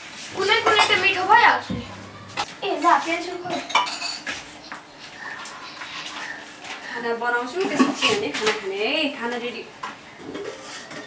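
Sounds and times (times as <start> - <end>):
metal pots and utensils clinking: 0.3 - 2.5.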